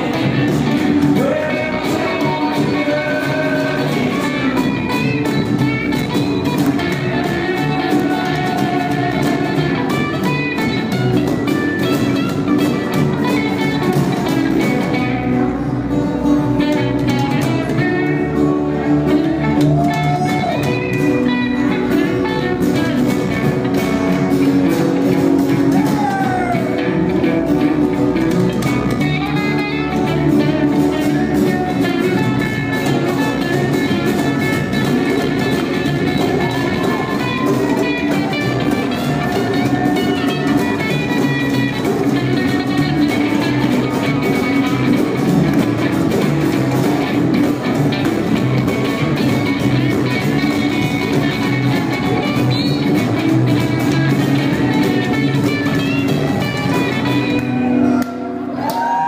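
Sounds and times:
plucked upright bass: 0:00.0 - 0:58.2
drums: 0:00.0 - 0:59.0
guitars: 0:00.0 - 0:59.0.

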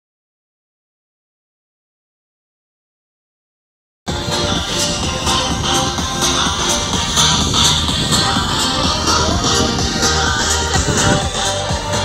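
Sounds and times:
music with steady beat: 0:04.1 - 0:12.0.

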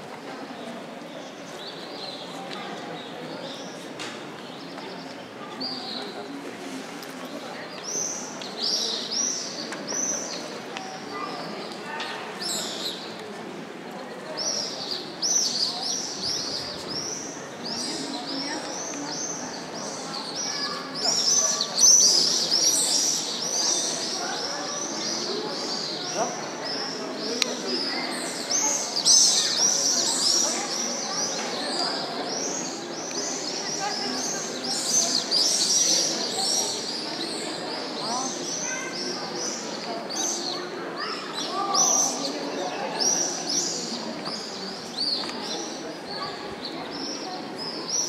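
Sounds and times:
murmur of voices: 0:00.0 - 0:48.0.

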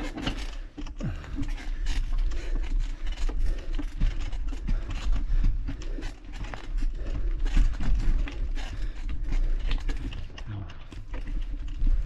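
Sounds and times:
bike rattling over bumps: 0:00.0 - 0:12.0.

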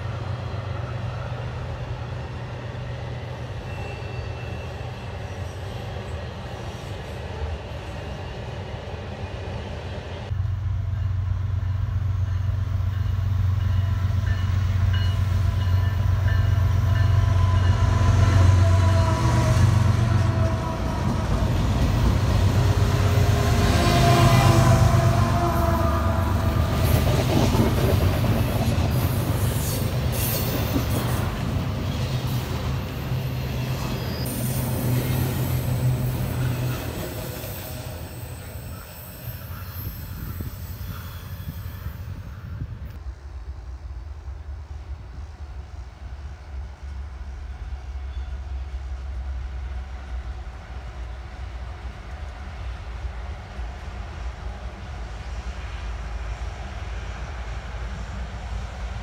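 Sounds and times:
diesel locomotive engine drone: 0:00.0 - 0:59.0
freight train cars rumbling: 0:00.0 - 0:59.0.

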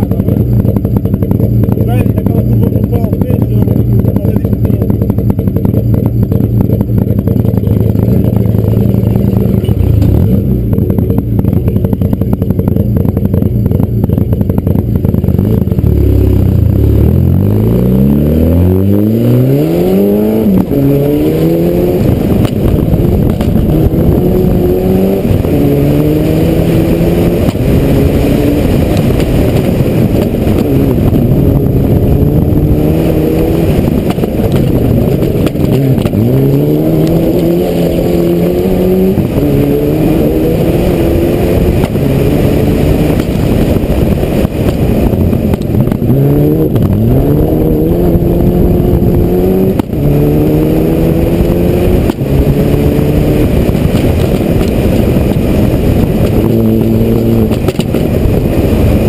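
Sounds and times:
rally car engine revving through gears: 0:00.0 - 0:59.0.

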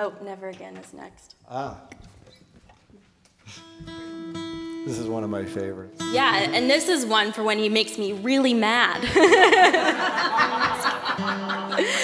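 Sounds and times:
acoustic guitar chord strummed: 0:03.6 - 0:07.0, 0:09.0 - 0:12.0.

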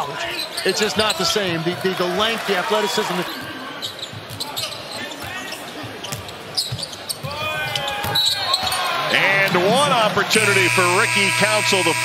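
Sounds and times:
arena noise: 0:00.0 - 0:12.0.

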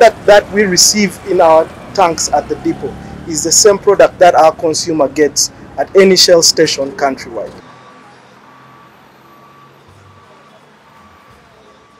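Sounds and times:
reversing alarm beeping: 0:00.0 - 0:11.9.

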